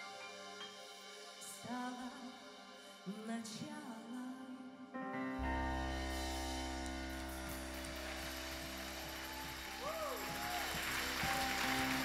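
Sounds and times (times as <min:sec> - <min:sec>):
light applause: 0:07.2 - 0:12.0.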